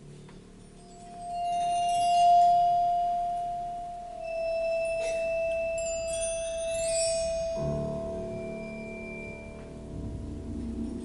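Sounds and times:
high sustained percussion tone: 0.6 - 11.0
high ringing notes: 0.8 - 11.0.

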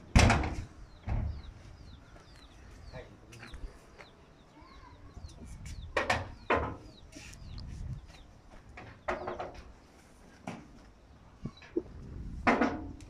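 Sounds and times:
metal door slamming: 0.1 - 1.4.

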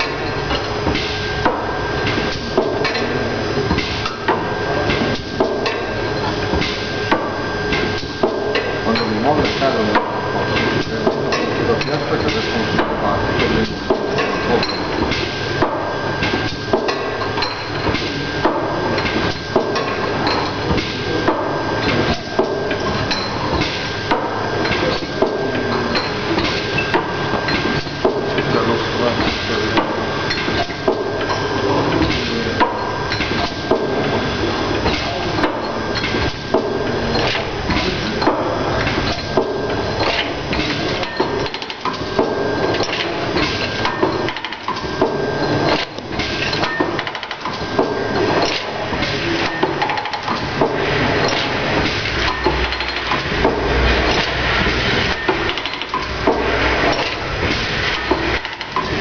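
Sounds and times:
machine parts clicking: 51.3 - 53.4, 55.1 - 59.0.

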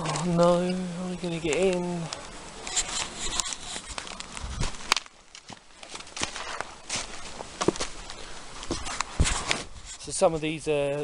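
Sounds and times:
footsteps on leafy muddy path: 0.0 - 10.4.

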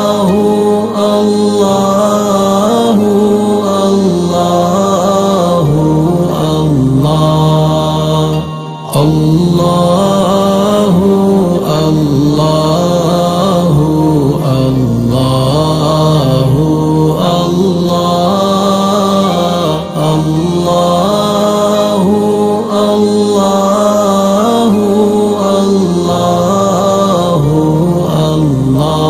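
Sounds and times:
person chanting melodically: 0.0 - 29.0.

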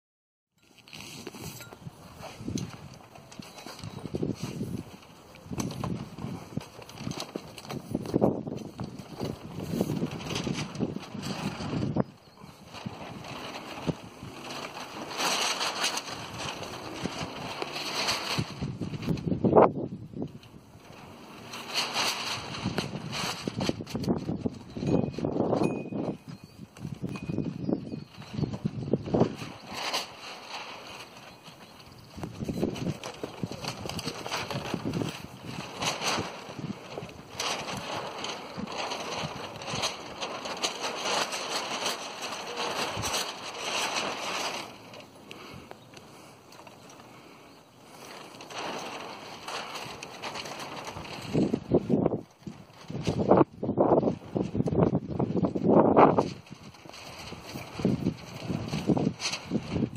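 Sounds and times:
sail flapping and rustling: 0.6 - 59.9
wind buffeting microphone: 1.1 - 59.9.

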